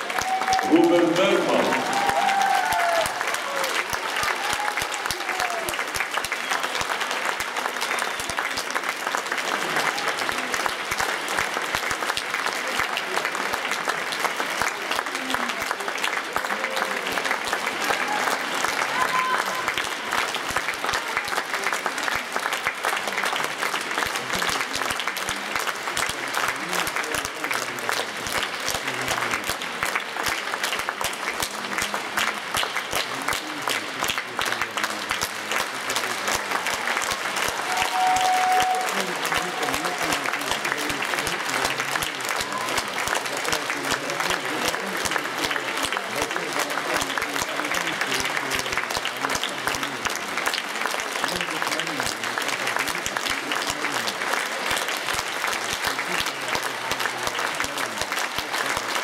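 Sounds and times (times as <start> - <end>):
audience applauding: 0.0 - 59.0
voices rising over applause: 0.0 - 59.0.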